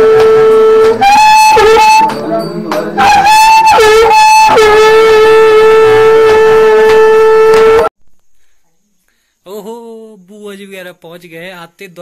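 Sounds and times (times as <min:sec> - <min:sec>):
conch shell blown: 0:00.0 - 0:07.9.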